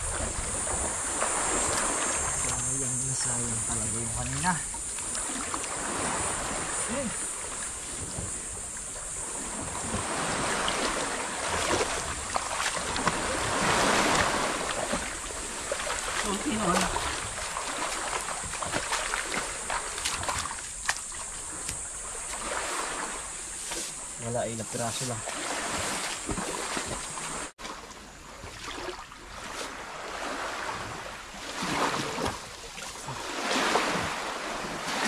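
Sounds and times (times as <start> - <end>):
sea water sloshing and splashing: 0.0 - 35.0.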